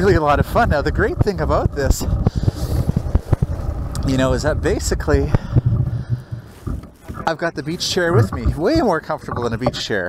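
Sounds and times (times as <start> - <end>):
sharp clicks and knocks: 0.5 - 4.1.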